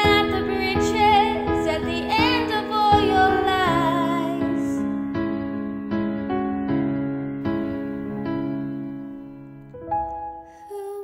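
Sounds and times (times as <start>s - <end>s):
woman singing wordless line: 0.0s - 4.8s, 10.6s - 11.0s
piano chords: 0.0s - 11.0s.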